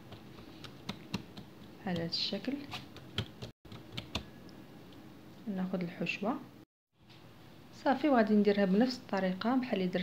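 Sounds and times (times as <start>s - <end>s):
hands tapping dough on countertop: 0.0s - 2.2s.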